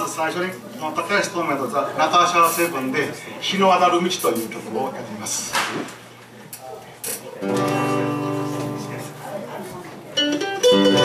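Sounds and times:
acoustic guitar chord strummed: 7.4 - 9.3, 10.2 - 11.0.

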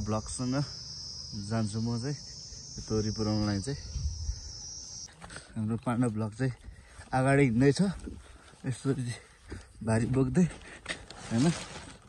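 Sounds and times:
man speaking: 0.0 - 3.9
high-pitched insect chorus: 0.0 - 5.1.

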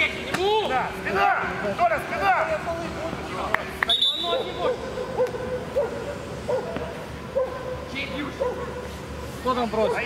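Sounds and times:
open-air pitch noise: 0.0 - 10.0
referee's whistle blast: 3.9 - 4.5.

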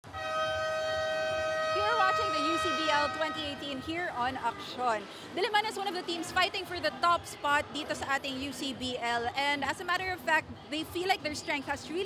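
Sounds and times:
arena horn blast: 0.0 - 4.4.

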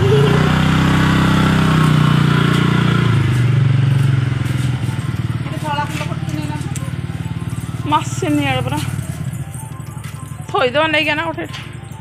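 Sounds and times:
motor scooter engine revving: 0.0 - 12.0.

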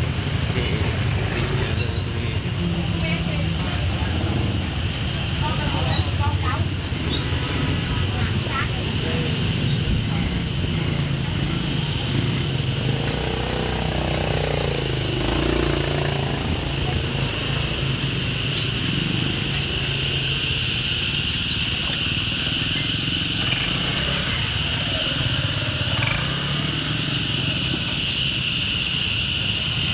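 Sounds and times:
motorbike engines: 0.0 - 29.9
street traffic: 0.0 - 29.9.

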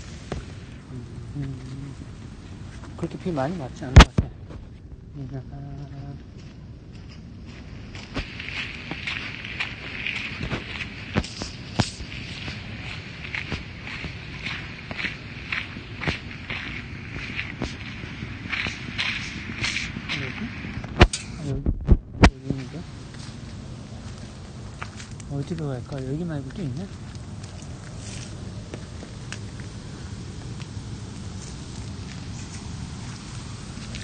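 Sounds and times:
rain tapping on umbrella: 3.0 - 4.4, 8.1 - 34.0
sharp drips: 8.0 - 21.5, 22.4 - 34.0.

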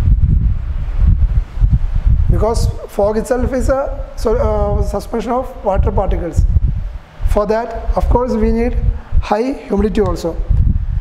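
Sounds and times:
microphone rubbing against shirt: 0.0 - 2.8, 5.8 - 11.0.

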